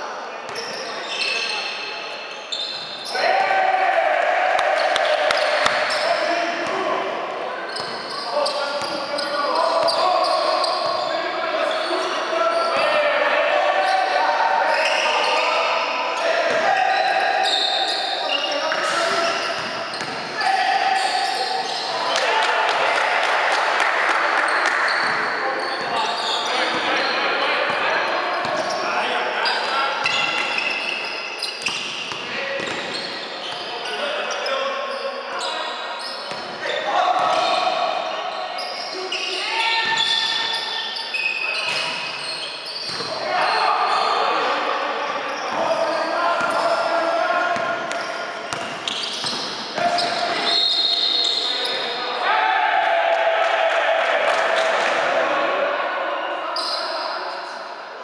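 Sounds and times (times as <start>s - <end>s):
players shouting in a gym: 0.5s - 57.6s
ball bouncing on court floor: 19.6s - 20.3s, 31.6s - 32.9s, 47.6s - 50.2s.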